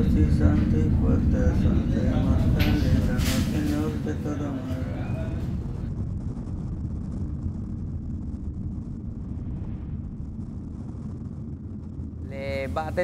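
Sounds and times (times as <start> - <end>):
vehicle engine rumble: 0.0 - 13.0.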